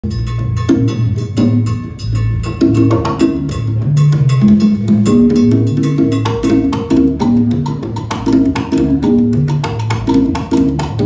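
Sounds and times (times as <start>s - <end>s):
conga drums: 0.0s - 11.0s
electric bass line: 0.0s - 11.0s
latin band playing: 0.0s - 11.0s.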